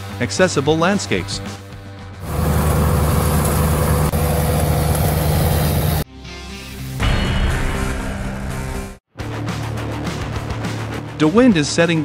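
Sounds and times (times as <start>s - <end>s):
track loader with brush cutter: 2.2s - 6.0s.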